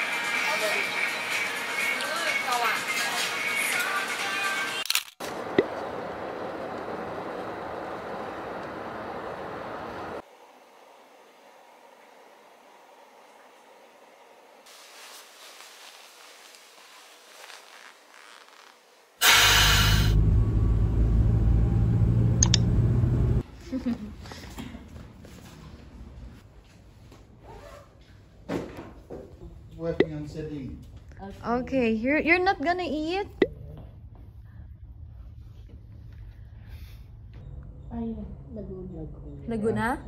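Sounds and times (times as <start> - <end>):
car road and engine noise: 5.3 - 10.3, 19.2 - 23.5.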